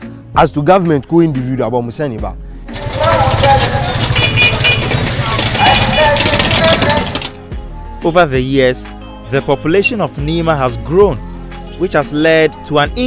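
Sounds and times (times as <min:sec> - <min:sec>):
crowd bustle: 0:02.7 - 0:07.3
traffic: 0:02.7 - 0:07.3
vehicle engine running: 0:02.7 - 0:07.4.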